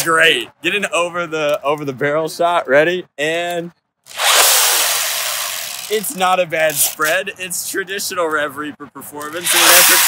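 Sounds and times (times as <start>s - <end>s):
toy blaster flywheel whir: 4.1s - 7.0s, 9.4s - 10.0s.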